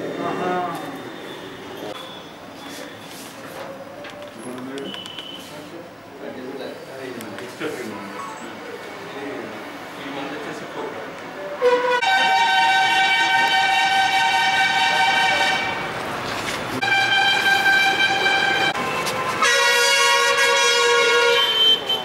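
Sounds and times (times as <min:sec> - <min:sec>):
vehicle horn blasts: 0:11.6 - 0:15.8, 0:16.8 - 0:22.0.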